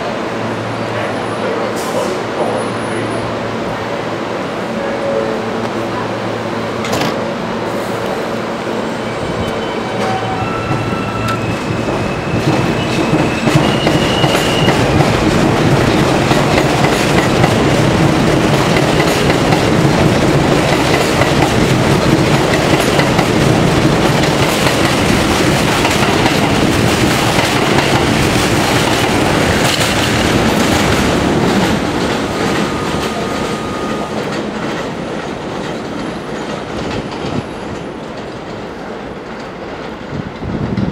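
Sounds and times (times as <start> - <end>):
electric train whine: 0.0 - 40.8
train cars clacking over rails: 9.2 - 40.9.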